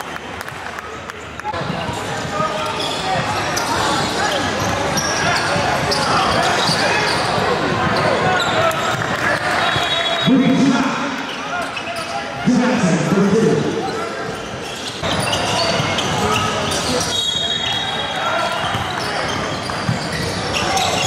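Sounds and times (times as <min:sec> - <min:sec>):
people talking and calling out: 0:01.5 - 0:21.0.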